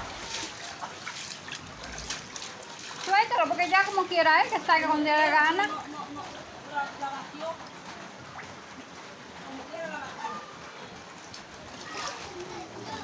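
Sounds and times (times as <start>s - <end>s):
faint voices: 8.8s - 13.0s.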